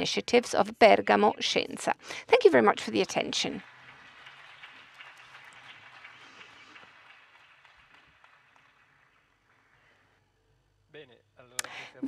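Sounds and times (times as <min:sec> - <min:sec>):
faint audience applause: 0:02.8 - 0:10.2.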